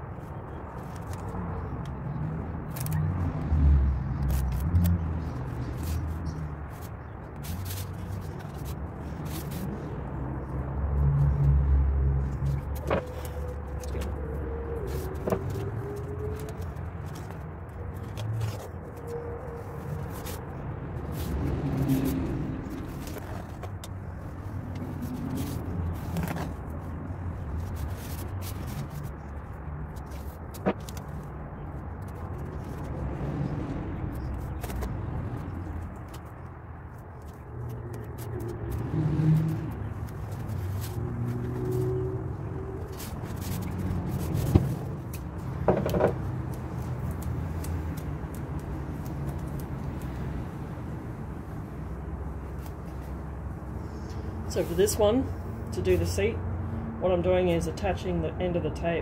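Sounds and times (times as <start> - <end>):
tape being pulled and pressed: 2.6 - 3.1, 4.1 - 9.8, 35.6 - 50.5.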